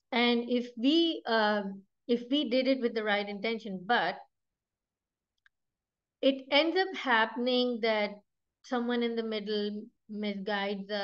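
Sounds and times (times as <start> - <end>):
woman speaking: 0.0 - 4.3, 6.2 - 11.0.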